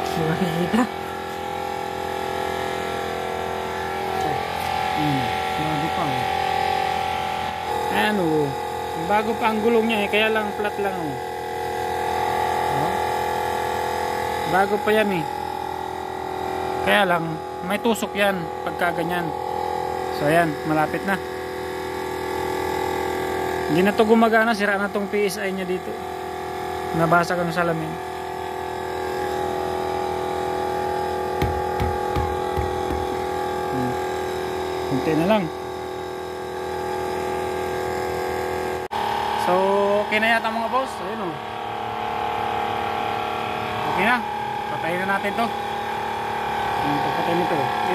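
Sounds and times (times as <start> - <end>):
tyre compressor buzzing: 0.0 - 47.9
dull knocks: 31.4 - 33.1.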